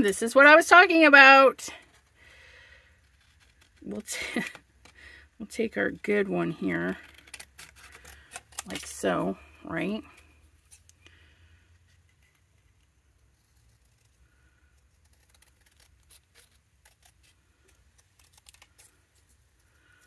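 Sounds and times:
scissors snipping cardstock: 14.8 - 19.0.

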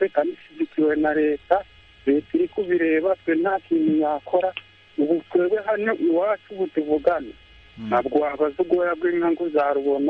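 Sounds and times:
person talking: 0.0 - 10.0.

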